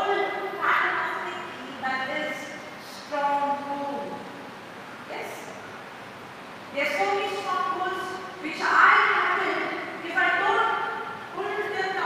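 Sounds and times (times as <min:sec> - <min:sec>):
woman's voice through loudspeaker: 0:00.0 - 0:04.3, 0:05.1 - 0:05.6, 0:06.7 - 0:12.0.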